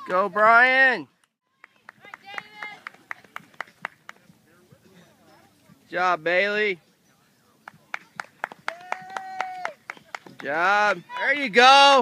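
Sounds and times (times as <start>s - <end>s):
spectators clapping: 1.6s - 4.2s, 7.6s - 11.4s.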